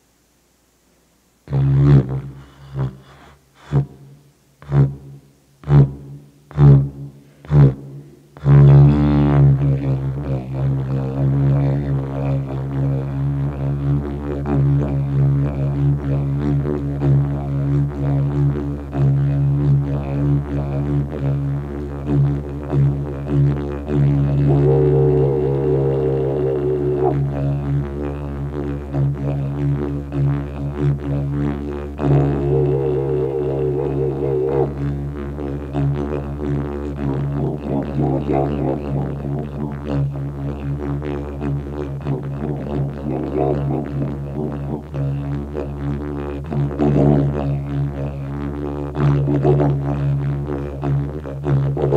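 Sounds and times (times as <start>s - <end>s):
didgeridoo drone: 5.6s - 51.9s
wavering higher overtone: 22.1s - 48.3s.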